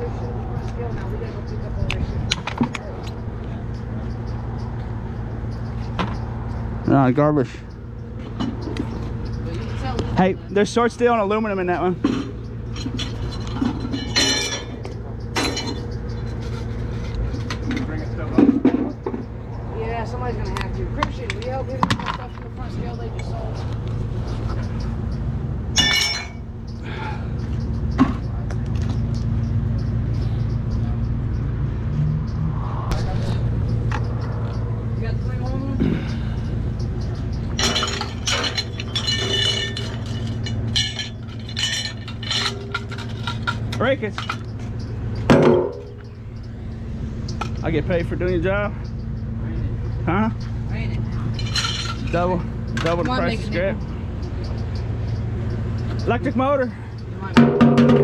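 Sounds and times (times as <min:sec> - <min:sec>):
low mechanical hum: 0:07.6 - 0:58.0
metal scrap clinking: 0:12.0 - 0:19.2, 0:25.8 - 0:26.5, 0:37.4 - 0:44.6, 0:51.3 - 0:52.9.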